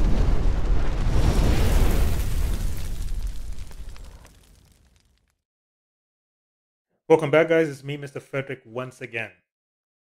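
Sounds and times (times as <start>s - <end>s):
rumbling crackling sound effect: 0.0s - 5.4s.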